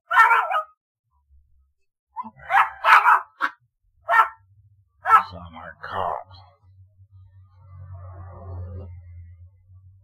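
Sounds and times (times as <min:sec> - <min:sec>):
dog barking: 0:00.0 - 0:00.8, 0:02.2 - 0:04.4, 0:05.0 - 0:05.4.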